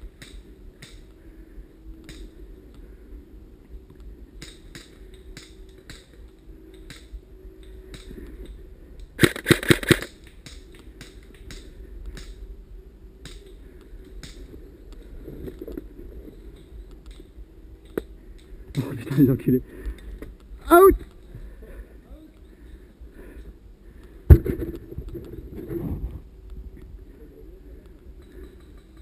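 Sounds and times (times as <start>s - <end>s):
airsoft gun shots: 9.2s - 10.1s
rapid burst of airsoft shots: 9.2s - 10.1s.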